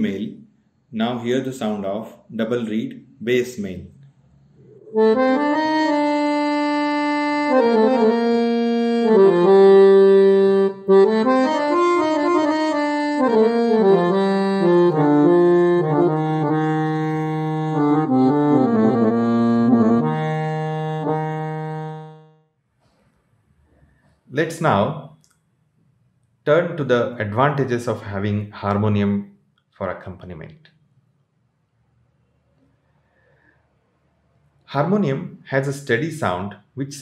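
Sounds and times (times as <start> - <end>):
harmonium playing slow melody: 4.7 - 22.5.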